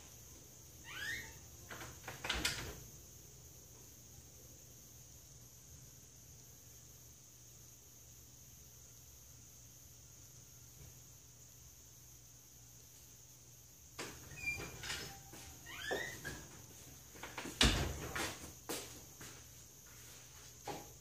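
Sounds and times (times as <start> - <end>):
faint steady hum: 0.0 - 21.0
short rising squeak: 0.8 - 1.4.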